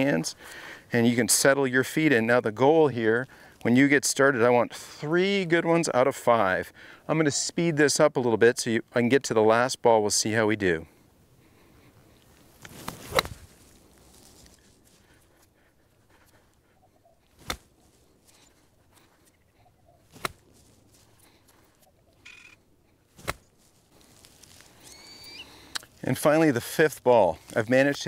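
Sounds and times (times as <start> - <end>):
club swing swoosh and sand: 12.7 - 13.8
faint bird chirp: 19.2 - 20.1, 24.8 - 25.5.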